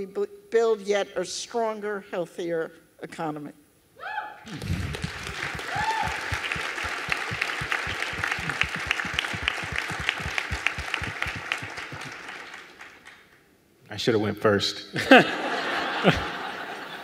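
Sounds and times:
audience applauding: 4.5 - 13.4.

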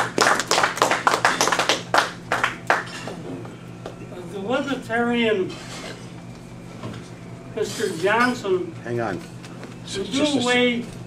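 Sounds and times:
small audience applauding: 0.0 - 3.0.

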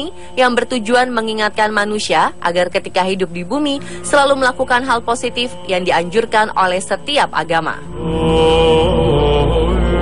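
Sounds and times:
droning chant-like music: 0.0 - 10.0
low hum: 0.0 - 10.0.

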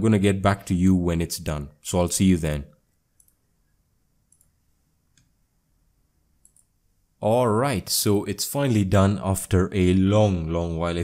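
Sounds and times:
faint sharp clicks: 2.9 - 3.4, 4.3 - 4.5, 6.4 - 6.7.

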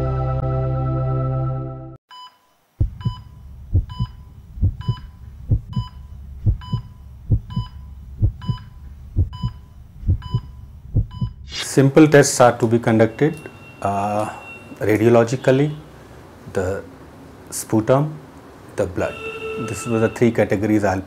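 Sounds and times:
heartbeat low thumps: 2.8 - 11.6
short high electronic beep: 13.0 - 14.8, 19.1 - 20.3.

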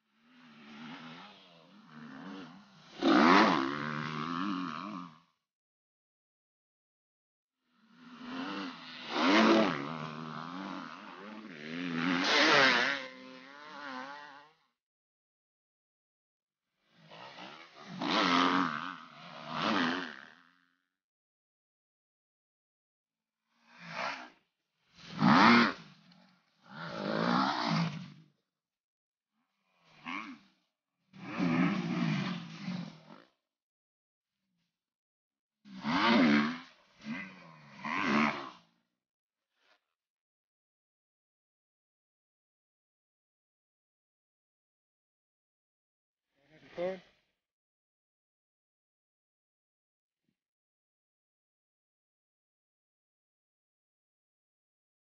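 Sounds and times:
dirt bike engine revving: 0.3 - 5.2, 8.0 - 14.6, 17.3 - 20.4, 25.0 - 28.2, 31.2 - 33.2, 35.8 - 38.7.

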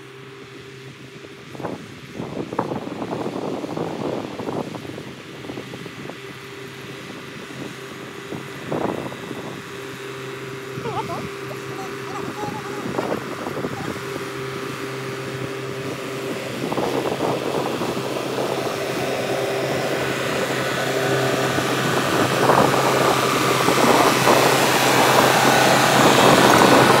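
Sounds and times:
tractor diesel engine running: 5.2 - 27.0.

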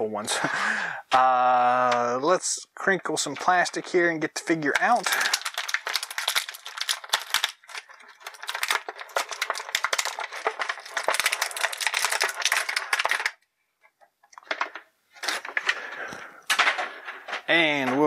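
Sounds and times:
plastic packaging crinkling: 3.1 - 13.4, 14.2 - 18.0.

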